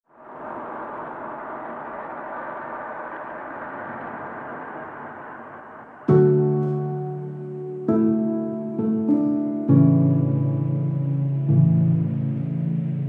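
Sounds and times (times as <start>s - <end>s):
steady rushing noise: 0.1s - 13.0s.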